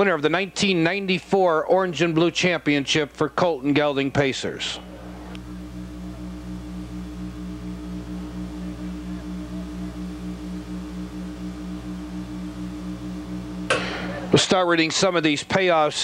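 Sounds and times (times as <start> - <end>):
low pulsing hum: 4.4 - 15.6.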